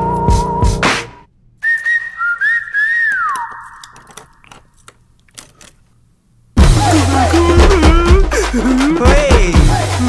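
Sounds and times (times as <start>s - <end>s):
high whistle sliding down: 1.6s - 3.8s
metal pick clicking in lock: 3.4s - 5.8s.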